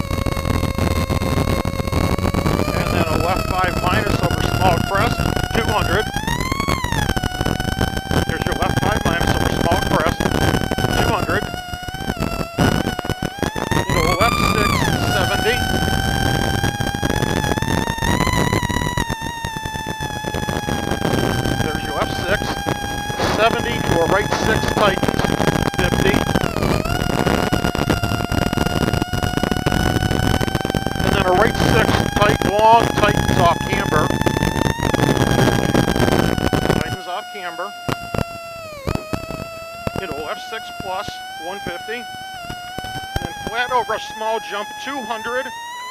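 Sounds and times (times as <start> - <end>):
tyres rushing on snow: 21.4 - 26.2.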